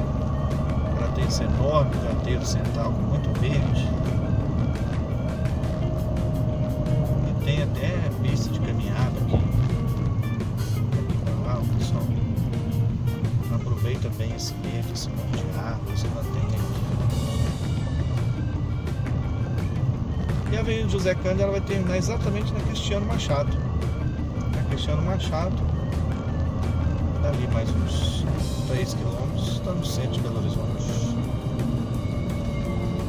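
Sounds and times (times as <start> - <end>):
voices: 0.0 - 12.4, 13.3 - 18.5, 19.6 - 31.4
car engine and road rumble: 0.0 - 33.0
music playing: 0.0 - 33.0.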